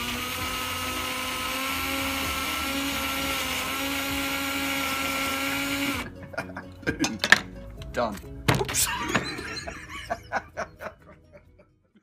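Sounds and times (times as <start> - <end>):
cordless drill whining: 0.0 - 6.1
peeler shaving potato skin: 0.0 - 6.1.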